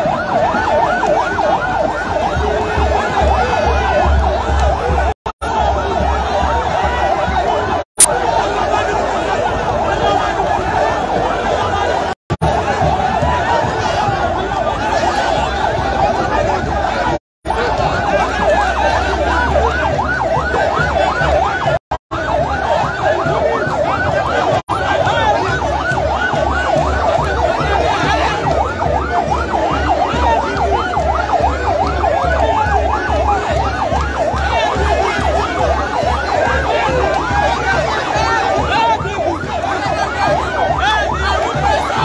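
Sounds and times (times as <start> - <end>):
electronic siren yelping: 0.0 - 42.0
large crowd noise: 0.0 - 42.0.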